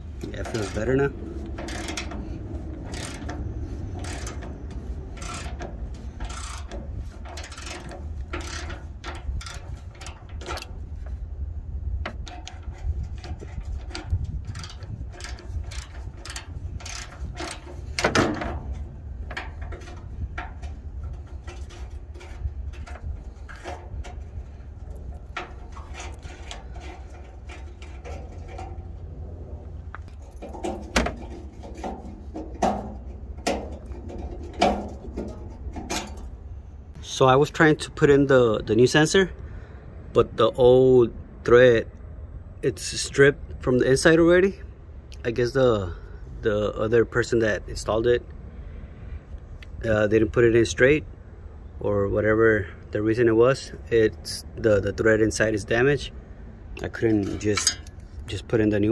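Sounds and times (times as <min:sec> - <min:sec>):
metal tools clattering: 0:00.0 - 0:10.8, 0:12.1 - 0:29.1, 0:29.8 - 0:36.4, 0:56.8 - 0:58.5
low rumble: 0:00.0 - 0:37.3.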